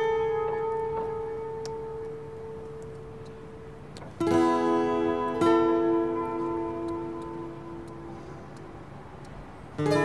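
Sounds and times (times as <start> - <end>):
guitar note ringing: 0.0 - 10.0.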